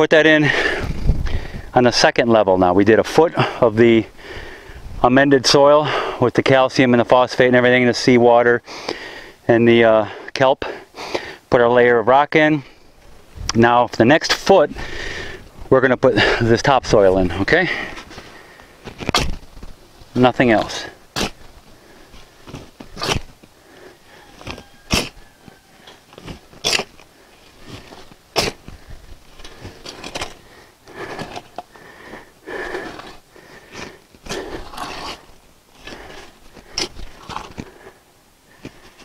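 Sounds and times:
shovel scraping soil: 18.8 - 19.5, 20.2 - 21.5, 22.1 - 23.4, 24.3 - 31.6, 32.6 - 37.8.

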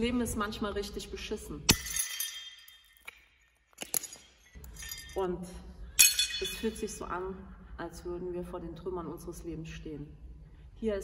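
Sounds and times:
broken pottery shards clinking: 1.7 - 5.2, 6.0 - 6.8.

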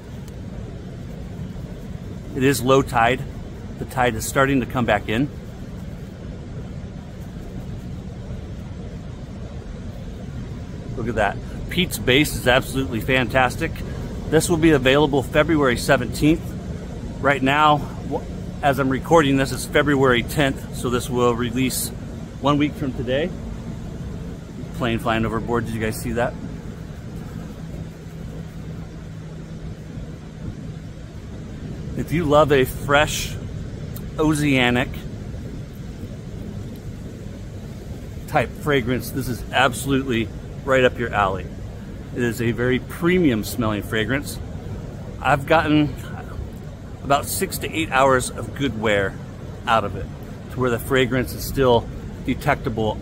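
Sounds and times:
airplane engine drone: 0.0 - 53.0
ocean surf on rocky shore: 0.0 - 53.0.

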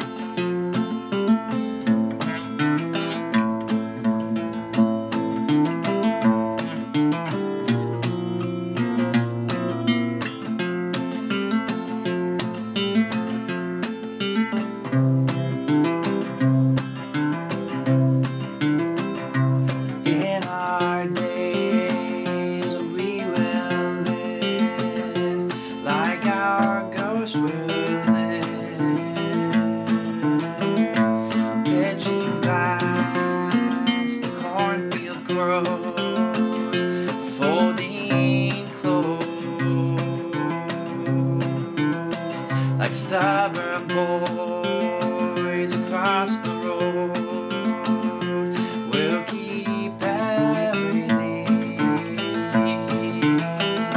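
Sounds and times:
acoustic guitar playing: 0.0 - 53.9.

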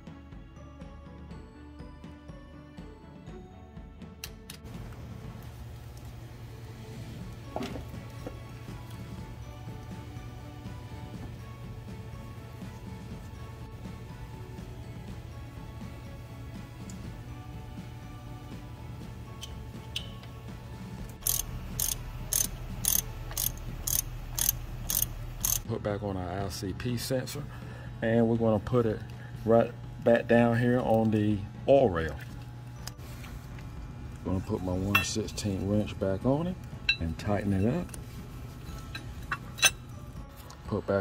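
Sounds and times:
steady low hum: 4.7 - 40.5
socket ratchet clicking: 21.2 - 25.6.

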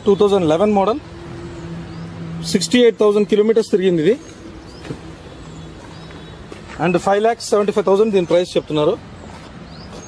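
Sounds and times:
street traffic hum: 0.0 - 10.0
man speaking: 6.8 - 9.0.

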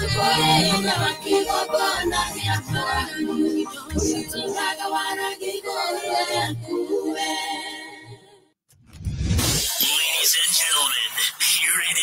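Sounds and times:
crash sound effect with deep rumble: 8.8 - 9.8.

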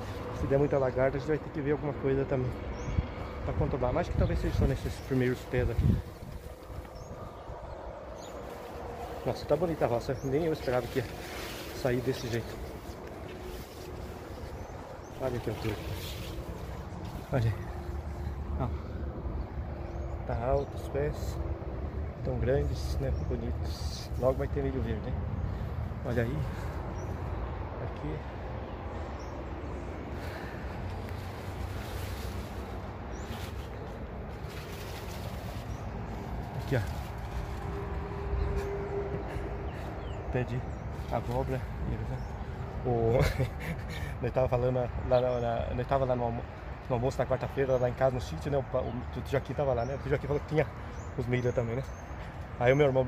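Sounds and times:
wind buffeting microphone: 2.6 - 20.8.

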